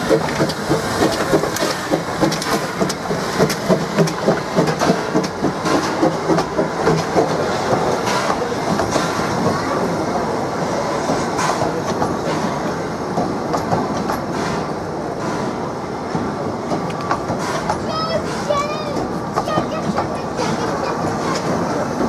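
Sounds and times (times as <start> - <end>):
train wheels rumbling on rails: 0.0 - 22.0
wheels clicking over rail joints: 0.0 - 22.0.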